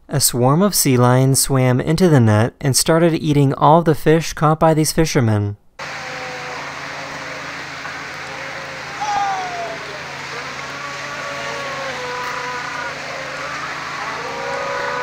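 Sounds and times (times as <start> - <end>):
boat engine running: 5.8 - 15.0
drawn-out calls: 5.8 - 15.0
splashing sea water: 5.8 - 15.0.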